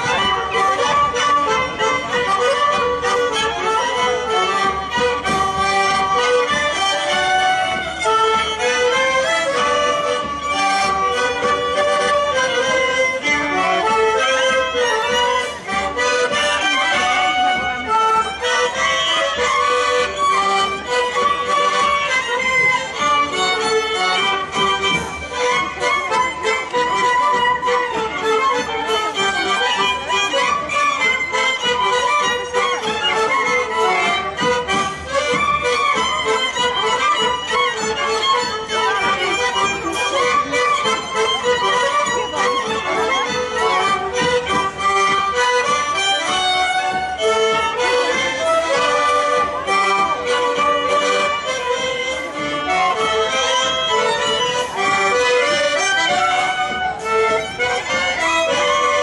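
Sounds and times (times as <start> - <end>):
folk band playing a polka: 0.0 - 59.0.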